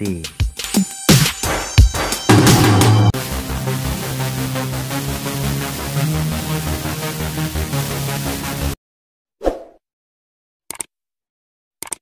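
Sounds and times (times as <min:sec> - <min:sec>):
electronic dance music: 0:00.7 - 0:08.8.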